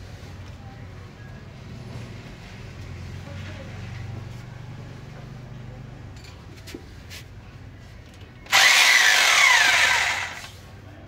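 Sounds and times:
electric drill drilling into wall: 8.5s - 10.5s.

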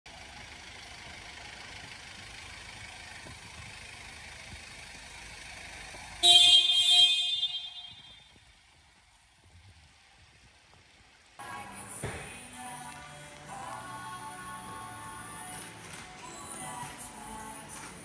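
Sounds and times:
van rolling slowly: 0.1s - 18.0s
loud vehicle horn: 6.2s - 8.4s.

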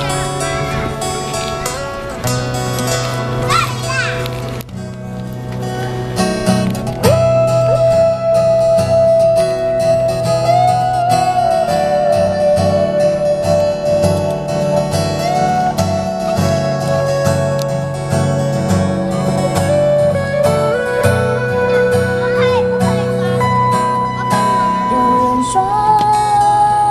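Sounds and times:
acoustic guitars playing: 0.0s - 26.9s.

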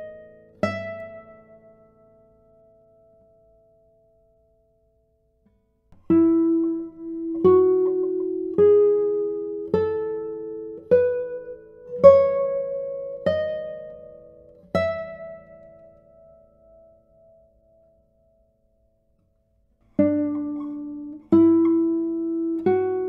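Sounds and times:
classical guitar plucked notes: 0.0s - 23.0s.

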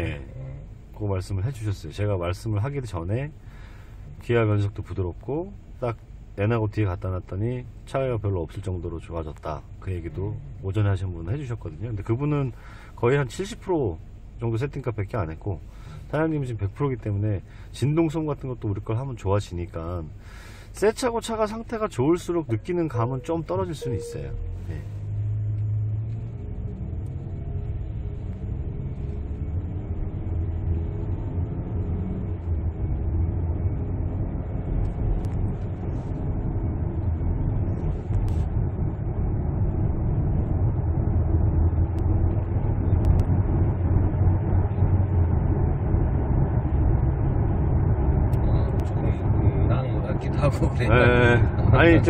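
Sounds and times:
car engine: 0.0s - 52.0s
road noise inside car: 0.0s - 52.0s.

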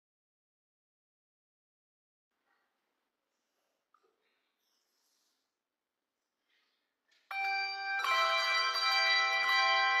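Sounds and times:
handbell choir ringing: 7.3s - 10.0s.

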